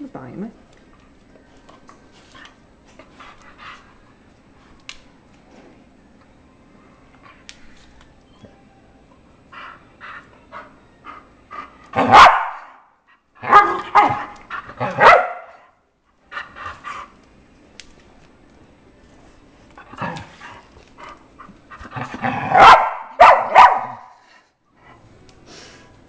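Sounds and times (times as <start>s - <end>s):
dog barking loudly: 12.0s - 12.8s, 13.4s - 15.6s, 22.3s - 24.1s
dog yipping: 12.1s - 12.6s, 22.6s - 24.0s.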